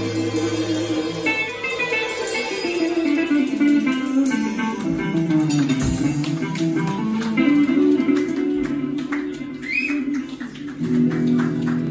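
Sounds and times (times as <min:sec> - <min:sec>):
drum and cymbal hits: 0:00.0 - 0:04.7
electric guitar chords: 0:00.0 - 0:11.9.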